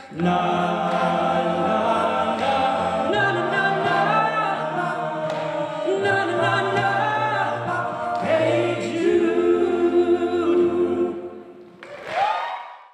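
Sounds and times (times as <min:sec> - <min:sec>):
male choir singing held chords: 0:00.0 - 0:11.7.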